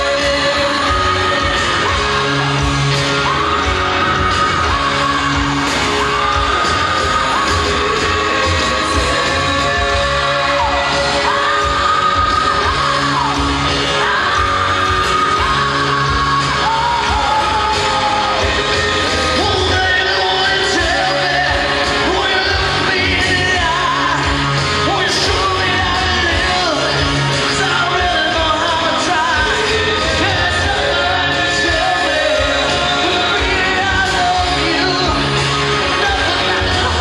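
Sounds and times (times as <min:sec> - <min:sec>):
person singing: 0:00.0 - 0:37.0
rock band playing live: 0:00.0 - 0:37.0
shouts: 0:00.0 - 0:37.0.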